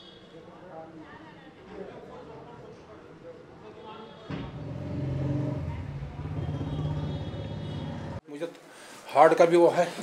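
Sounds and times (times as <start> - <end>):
vehicle engine droning: 4.3 - 8.2.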